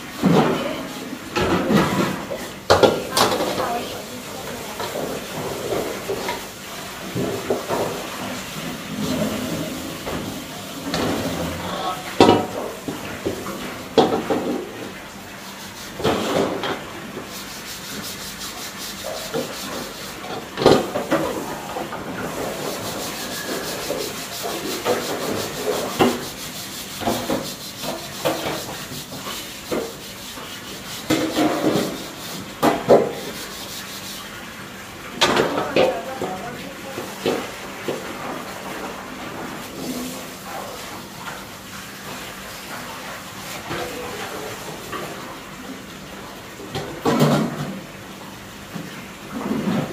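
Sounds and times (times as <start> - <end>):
broom sweeping hard floor: 0.0 - 45.3.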